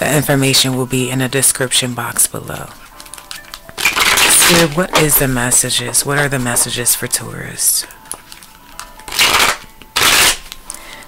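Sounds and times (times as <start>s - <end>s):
cards being shuffled: 2.7s - 7.0s, 7.8s - 11.0s.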